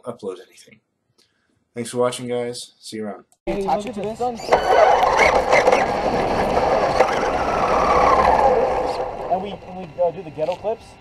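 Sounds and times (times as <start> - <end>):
tyre noise: 4.1 - 9.7
electric motor whine: 4.2 - 11.0.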